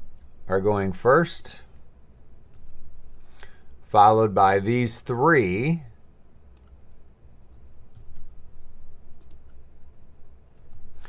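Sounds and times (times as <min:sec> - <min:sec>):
faint low hum: 0:00.0 - 0:11.0
computer mouse clicks: 0:02.2 - 0:02.8, 0:06.6 - 0:06.8, 0:07.5 - 0:08.3, 0:09.2 - 0:09.6, 0:10.5 - 0:10.9.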